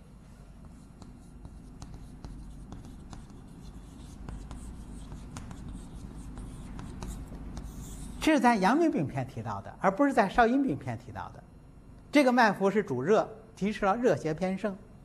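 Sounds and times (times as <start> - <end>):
low steady hum: 0.0 - 15.0
chalk tapping and scratching: 0.5 - 8.3.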